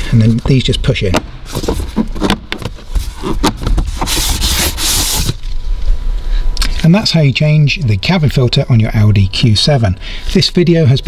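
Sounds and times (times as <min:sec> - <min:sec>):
plastic panel scraping: 0:01.1 - 0:05.6.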